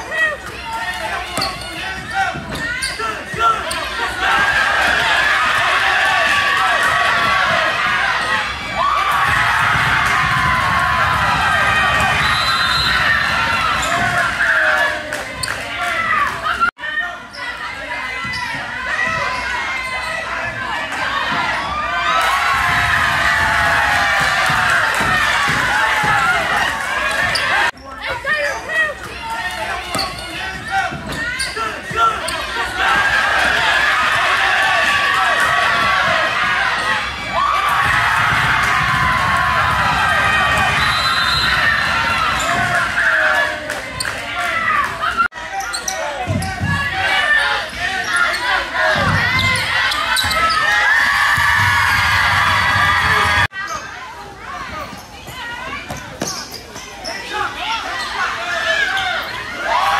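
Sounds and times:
people shouting in a hall: 0.0 - 59.9
sneakers squeaking: 0.1 - 5.8, 11.1 - 20.6, 21.2 - 22.0, 24.2 - 34.2, 40.0 - 43.0, 45.0 - 52.1, 54.6 - 59.7.

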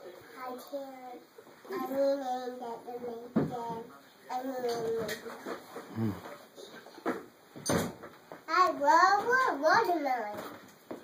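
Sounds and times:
quiet scattered voices: 0.0 - 11.0
low grunt: 5.9 - 6.3.

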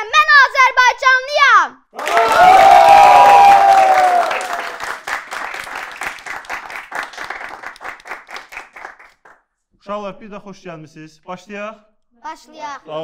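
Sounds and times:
voices cheering: 2.0 - 5.0
group clapping: 2.0 - 9.4.

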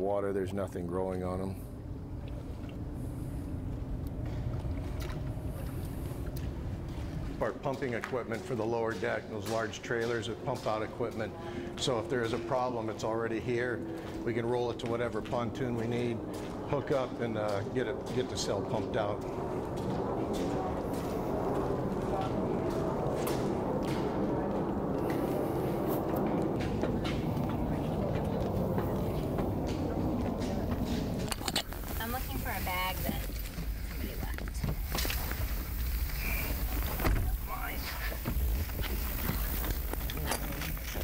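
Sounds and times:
deep buffeting rumble: 0.0 - 9.4, 10.0 - 41.0
steady rumble under bridge: 0.0 - 41.0.

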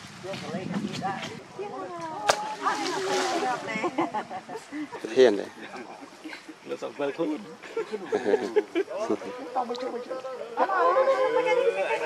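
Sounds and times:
voices chattering: 0.2 - 12.0
slap on water: 2.2 - 3.4.

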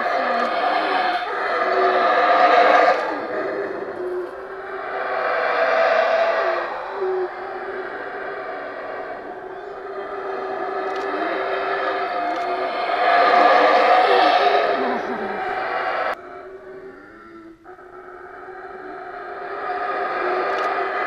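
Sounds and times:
howler monkeys howling: 0.0 - 21.0.

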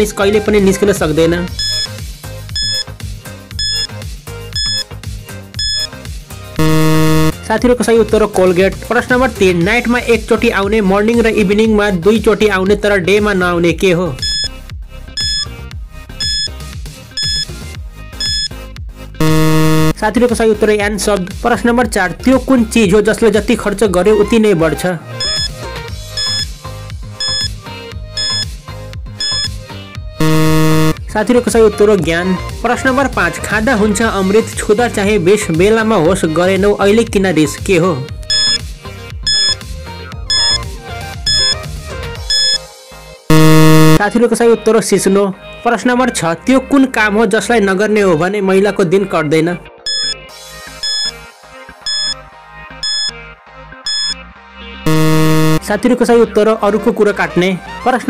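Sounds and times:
background music with steady beat: 0.0 - 44.3, 49.8 - 56.9
short electronic beeps: 1.6 - 1.9, 2.6 - 2.9, 3.6 - 3.9, 4.6 - 4.9, 5.6 - 5.9, 6.6 - 7.4, 14.2 - 14.5, 15.2 - 15.4, 16.2 - 16.5, 17.2 - 17.5, 18.2 - 18.5, 19.2 - 20.0, 25.2 - 25.6, 26.2 - 26.4, 27.2 - 27.5, 28.2 - 28.4, 29.2 - 29.5, 30.2 - 31.0, 38.3 - 38.6, 39.3 - 39.6, 40.3 - 40.6, 41.3 - 41.6, 42.3 - 42.6, 43.3 - 44.0, 49.9 - 50.2, 50.8 - 51.1, 51.9 - 52.2, 52.8 - 53.1, 53.9 - 54.2, 54.9 - 55.6
timer buzz: 1.6 - 1.9, 2.6 - 2.8, 3.6 - 3.9, 4.6 - 4.8, 5.6 - 5.9, 6.6 - 7.4, 15.2 - 15.4, 16.2 - 16.5, 17.2 - 17.4, 18.2 - 18.5, 19.2 - 20.0, 25.2 - 25.5, 26.2 - 26.4, 27.2 - 27.5, 28.2 - 28.4, 29.2 - 29.5, 30.2 - 31.0, 38.3 - 38.6, 39.3 - 39.6, 40.3 - 40.6, 41.3 - 41.5, 42.3 - 42.6, 43.3 - 44.0, 49.9 - 50.1, 50.8 - 51.1, 51.9 - 52.2, 52.8 - 53.1, 53.9 - 54.2, 54.9 - 55.6
backing beat: 4.6 - 4.8, 5.6 - 5.9, 6.6 - 7.4, 15.2 - 15.4, 19.2 - 20.0, 25.2 - 25.5, 30.2 - 31.0, 40.3 - 40.6, 41.3 - 41.6, 43.3 - 44.0, 54.9 - 55.6
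loud low buzzer: 6.6 - 7.4, 19.2 - 20.0, 30.2 - 31.0, 39.3 - 39.6, 40.3 - 40.6, 43.3 - 44.0, 54.9 - 55.6.

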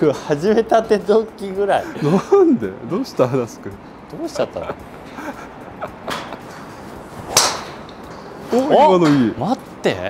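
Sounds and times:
golf driver striking ball: 7.2 - 8.2.

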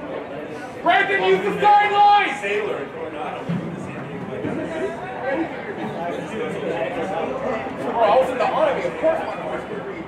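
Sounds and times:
loud shouted call: 0.8 - 2.7.

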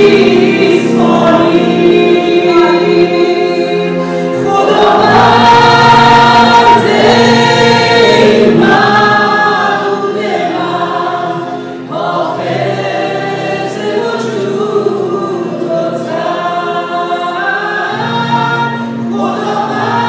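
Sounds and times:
group singing worship song: 0.0 - 20.0
stage piano: 0.0 - 20.0.

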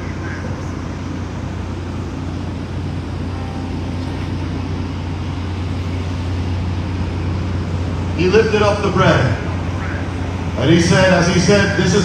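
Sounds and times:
low outdoor background rumble: 0.0 - 12.0.

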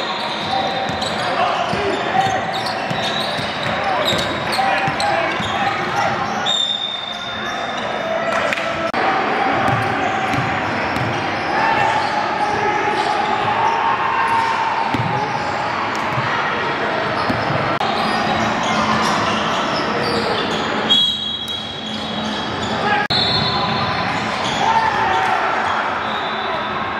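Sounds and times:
basketball bouncing on court: 0.4 - 6.1, 9.6 - 11.2, 14.9 - 15.5, 17.1 - 17.6.

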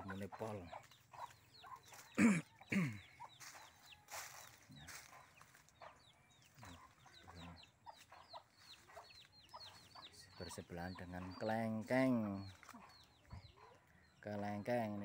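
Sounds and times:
chickens clucking: 0.0 - 15.0.

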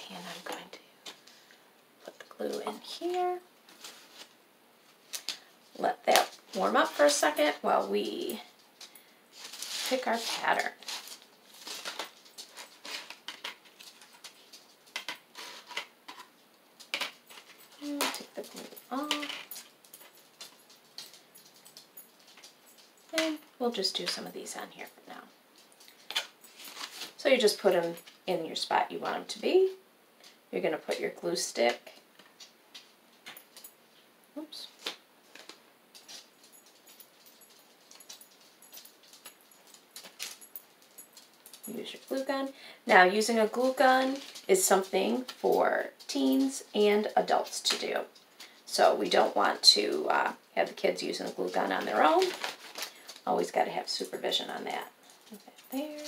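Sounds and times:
glass beads and stones clicking: 35.4 - 42.3.

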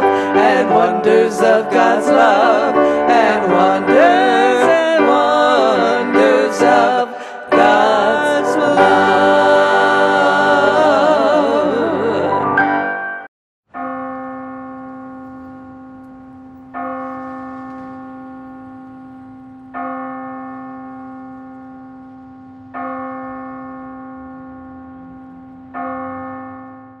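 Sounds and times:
church bell tolling: 0.0 - 11.4, 12.5 - 27.0.

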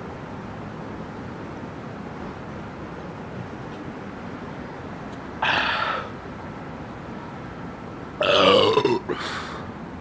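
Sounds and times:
man burping loudly: 8.2 - 9.3.

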